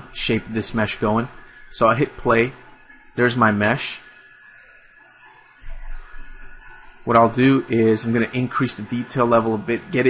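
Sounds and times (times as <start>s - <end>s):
faint steady hiss: 0.0s - 10.0s
low muffled noise: 0.0s - 10.0s.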